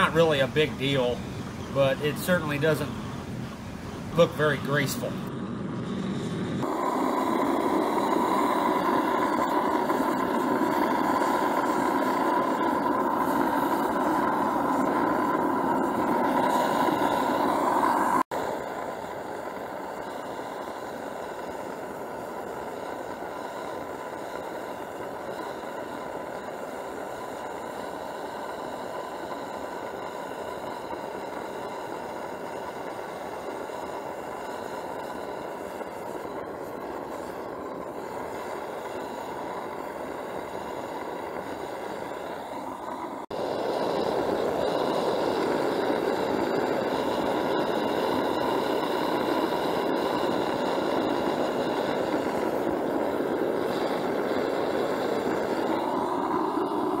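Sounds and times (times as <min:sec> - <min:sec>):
burner rushing with high tone: 0:00.0 - 0:57.0.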